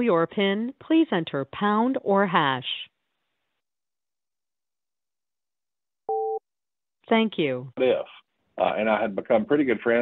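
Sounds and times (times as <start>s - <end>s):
two-tone telephone beep: 6.1s - 6.4s.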